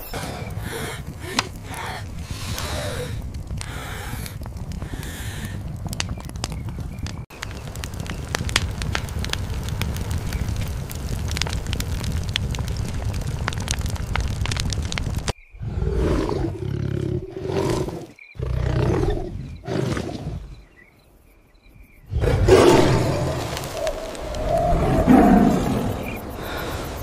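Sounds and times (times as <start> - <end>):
campfire crackling and popping: 0.0 - 15.4, 22.2 - 27.0
tiger growling: 15.6 - 20.6, 22.1 - 23.6.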